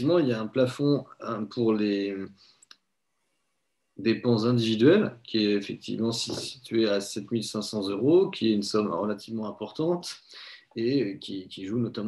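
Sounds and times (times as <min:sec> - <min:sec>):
man speaking: 0:00.0 - 0:02.3, 0:04.0 - 0:12.0.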